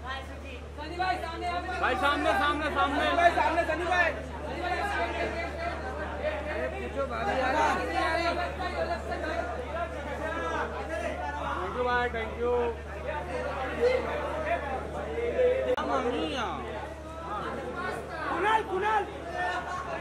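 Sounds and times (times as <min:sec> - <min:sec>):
people talking and calling out: 0:00.0 - 0:20.0.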